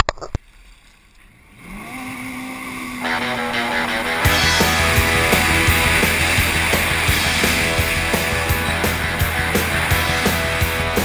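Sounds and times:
watercraft engine speeding up: 0:00.4 - 0:11.0.

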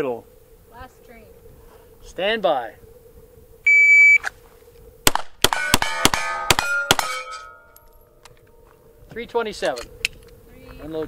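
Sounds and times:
shot timer beep: 0:03.7 - 0:04.2
pistol shots: 0:05.1 - 0:07.4
bullets ringing on steel plates: 0:05.5 - 0:07.8.

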